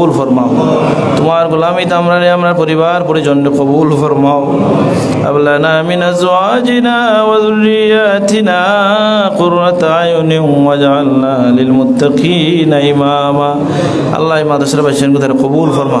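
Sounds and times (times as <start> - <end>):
man chanting a prayer: 0.0 - 16.0.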